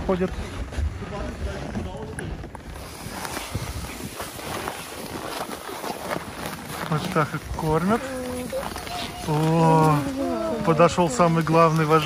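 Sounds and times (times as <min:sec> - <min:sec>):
wind buffeting microphone: 0:00.0 - 0:12.0
indistinct voices: 0:06.9 - 0:12.0.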